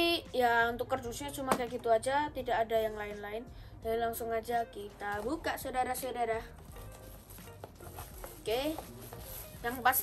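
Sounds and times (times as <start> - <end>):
cardboard box scraping: 6.8 - 10.0
person speaking: 7.9 - 10.0.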